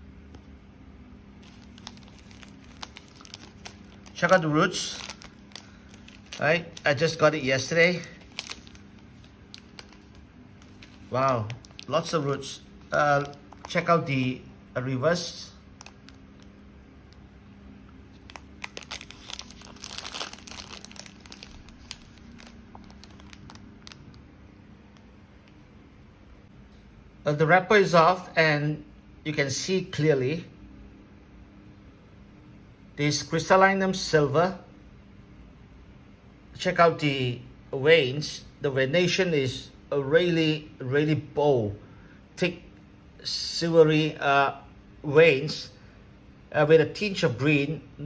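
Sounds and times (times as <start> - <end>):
plastic packaging crinkling: 1.4 - 13.9, 15.7 - 16.6, 18.1 - 24.2.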